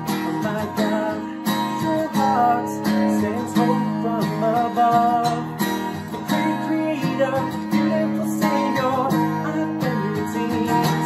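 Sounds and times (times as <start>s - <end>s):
strummed acoustic guitar: 0.0s - 11.0s
young man singing: 0.0s - 11.0s.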